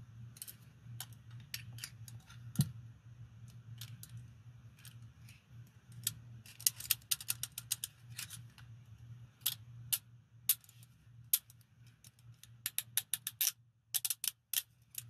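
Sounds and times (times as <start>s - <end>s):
handcuff ratchet clicks: 12.6s - 15.0s.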